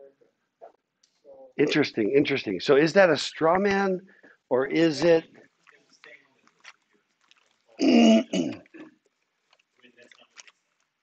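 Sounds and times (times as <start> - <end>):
faint rustles and ticks: 3.6 - 7.8, 8.6 - 11.0.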